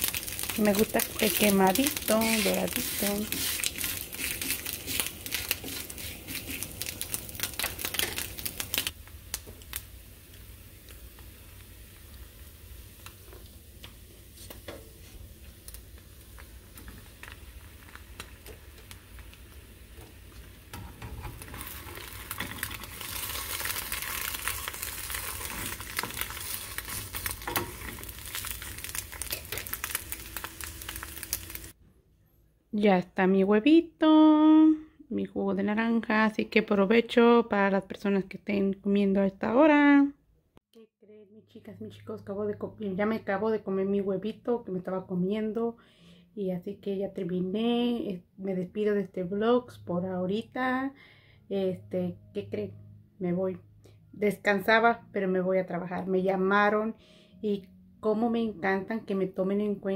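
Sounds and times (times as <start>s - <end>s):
food sizzling in pans: 0.0s - 31.8s
spatula scraping griddle: 1.2s - 6.9s, 20.8s - 29.7s.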